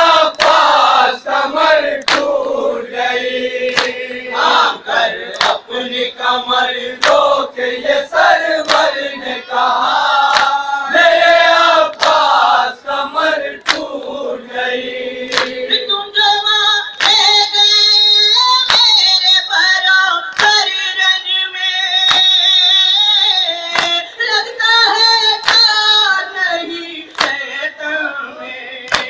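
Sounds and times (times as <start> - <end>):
men chanting a lament: 0.0 - 16.1, 26.2 - 29.0
hand slaps on chest: 2.0 - 2.3, 3.7 - 4.0, 5.4 - 5.6, 7.0 - 7.2, 10.3 - 10.6, 15.3 - 15.6, 22.1 - 22.3, 23.7 - 24.0, 27.2 - 27.4.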